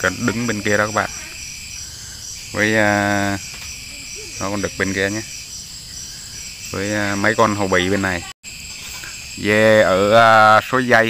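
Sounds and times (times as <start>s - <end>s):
person talking: 0.0s - 1.4s
insects chirring: 0.0s - 11.0s.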